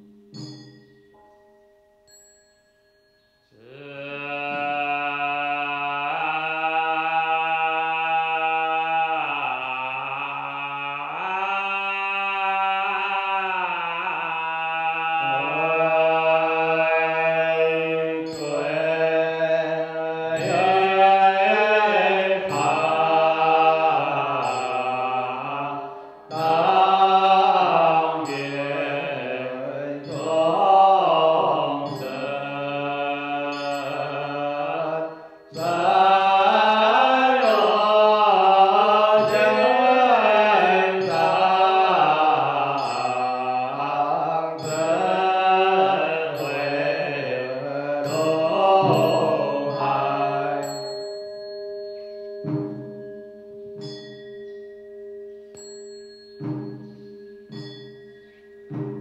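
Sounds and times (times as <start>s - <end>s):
liturgical chanting: 3.5s - 51.3s.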